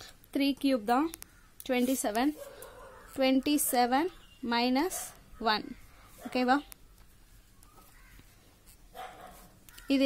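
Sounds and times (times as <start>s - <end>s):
faint bird call: 7.5s - 8.4s.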